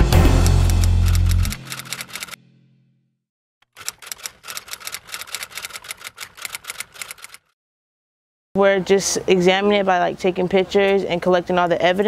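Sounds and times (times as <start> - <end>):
intro music: 0.0 - 1.9
typewriter keystroke clicks: 0.6 - 2.4, 3.6 - 7.5.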